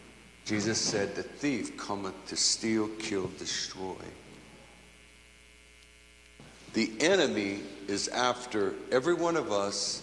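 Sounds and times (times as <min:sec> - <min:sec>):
faint electrical mains hum: 0:00.0 - 0:10.0
man speaking: 0:00.4 - 0:04.2, 0:06.7 - 0:10.0.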